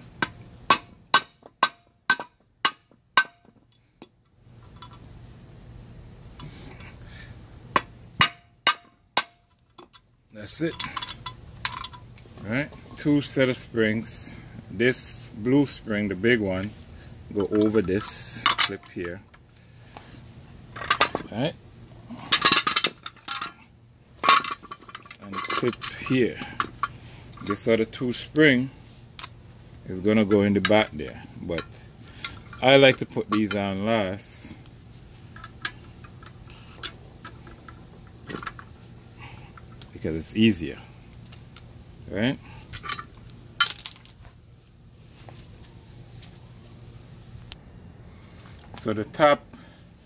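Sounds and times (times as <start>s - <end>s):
metal parts clinking: 0.2s - 5.1s, 7.8s - 12.2s, 17.3s - 19.2s, 20.7s - 21.3s, 22.1s - 23.6s, 24.2s - 27.7s, 42.6s - 44.3s.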